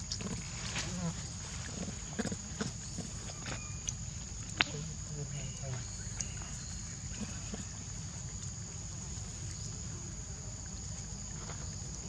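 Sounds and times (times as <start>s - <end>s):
monkeys chewing and handling fruit: 0.0s - 10.0s, 10.6s - 12.0s
high-pitched insect drone: 4.7s - 8.0s.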